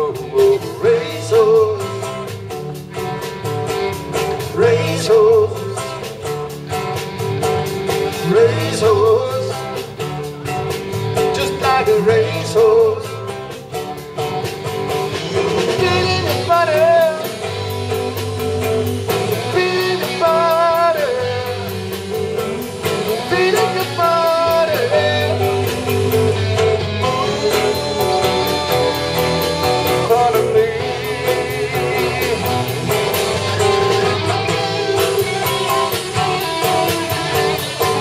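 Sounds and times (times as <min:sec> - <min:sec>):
drum kit beat: 0:00.0 - 0:38.0
electric bass: 0:00.0 - 0:38.0
electric guitars: 0:00.0 - 0:38.0
wavering lead melody: 0:15.1 - 0:38.0.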